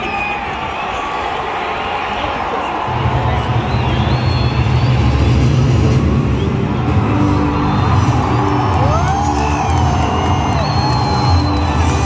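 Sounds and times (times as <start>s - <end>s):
large crowd noise: 0.0s - 12.0s
long high whistle: 10.0s - 12.0s.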